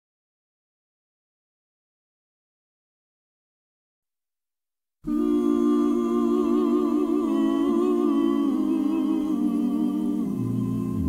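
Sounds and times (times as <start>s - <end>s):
voices humming harmony: 5.1s - 11.0s.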